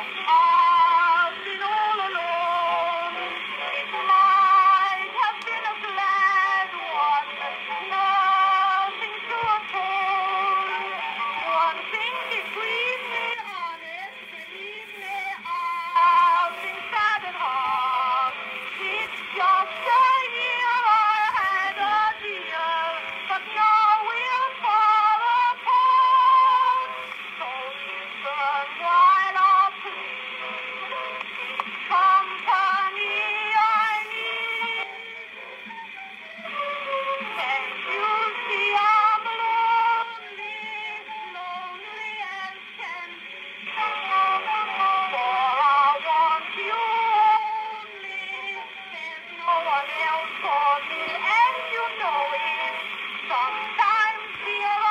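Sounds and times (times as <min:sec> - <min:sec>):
woman singing: 0:00.0 - 0:30.0, 0:31.9 - 0:35.0, 0:37.0 - 0:54.9
musical accompaniment: 0:00.0 - 0:54.9.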